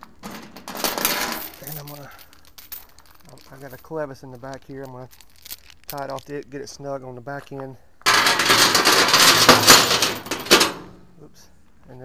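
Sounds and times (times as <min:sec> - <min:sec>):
metal chain rattling and clinking: 0:00.2 - 0:06.3, 0:08.1 - 0:10.9.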